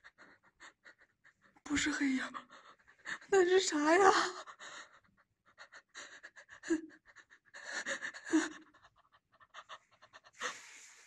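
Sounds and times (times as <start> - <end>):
person panting: 7.5 - 11.0.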